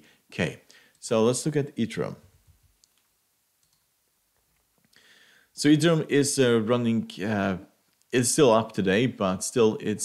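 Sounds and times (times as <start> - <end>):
faint computer clicks: 2.8 - 5.0.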